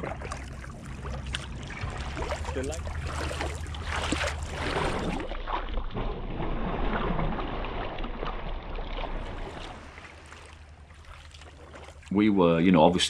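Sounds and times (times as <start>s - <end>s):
water lapping around kayak hull: 0.0s - 13.0s.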